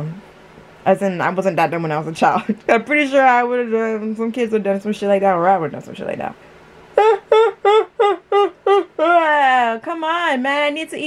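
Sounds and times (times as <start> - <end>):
woman laughing hard: 7.0 - 9.7.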